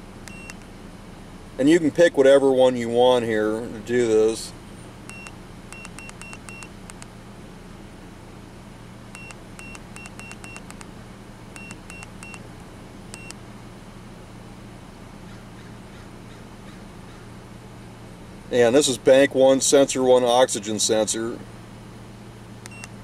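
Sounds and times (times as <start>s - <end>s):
car engine idling: 0.0s - 23.0s
scan tool button beeps: 0.2s - 0.6s, 5.1s - 7.0s, 9.2s - 10.8s, 11.6s - 12.4s, 13.1s - 13.4s, 22.7s - 23.0s.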